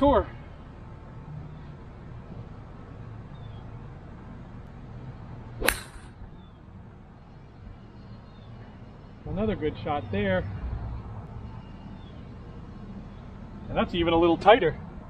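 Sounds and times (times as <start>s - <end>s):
golf club striking ball: 5.6s - 6.2s.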